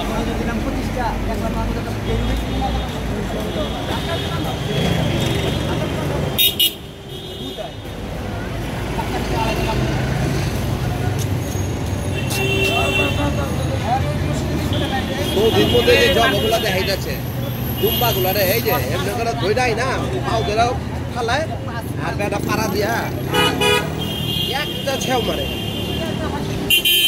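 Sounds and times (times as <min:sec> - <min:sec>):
crowd voices: 0:00.0 - 0:26.9
road traffic rumble: 0:00.0 - 0:27.0
vehicle horn toot: 0:23.3 - 0:24.6, 0:26.7 - 0:27.0.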